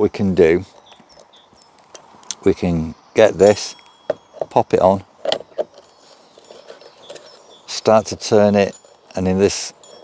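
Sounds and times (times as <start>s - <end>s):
faint handling rattles: 3.4s - 10.0s.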